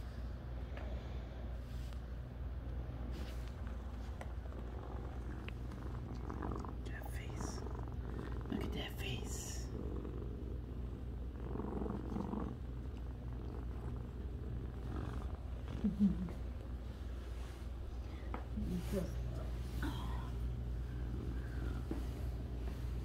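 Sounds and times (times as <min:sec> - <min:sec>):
cat purring: 0:03.0 - 0:23.0.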